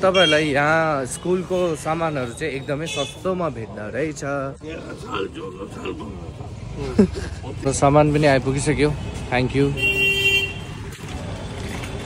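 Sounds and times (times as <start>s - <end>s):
street traffic: 0.0s - 12.0s
vehicle horn toot: 9.8s - 10.7s.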